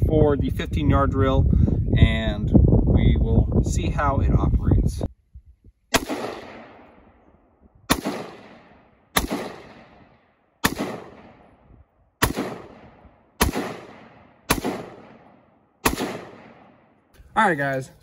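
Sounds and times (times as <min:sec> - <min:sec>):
rifle shots with echo: 0:05.9 - 0:17.1.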